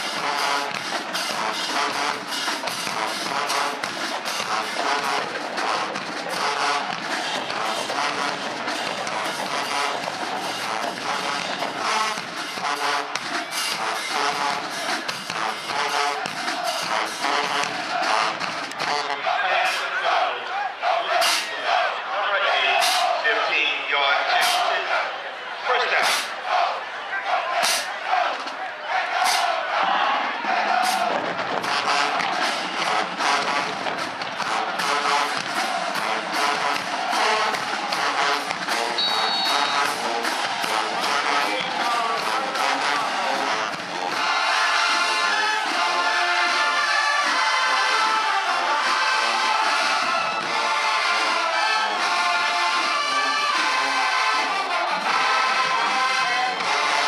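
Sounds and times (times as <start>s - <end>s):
brass section playing: 0.0s - 28.3s, 28.9s - 57.0s
marching drum cadence: 0.0s - 57.0s.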